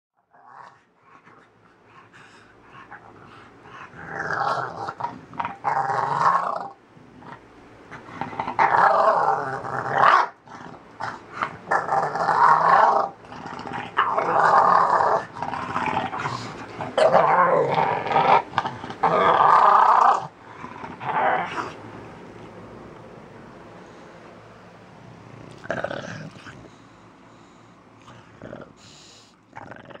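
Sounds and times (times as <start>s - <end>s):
dog growling: 0.2s - 21.8s, 25.2s - 26.8s, 28.0s - 30.0s
dog breathy hiss: 28.8s - 29.4s.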